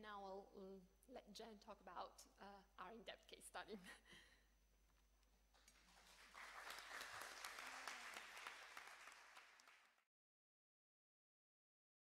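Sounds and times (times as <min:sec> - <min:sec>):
audience applauding: 0:05.6 - 0:10.1.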